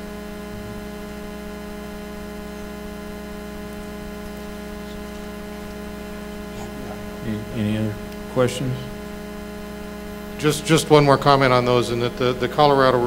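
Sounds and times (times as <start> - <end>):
steady electrical hum: 0.0 - 13.0.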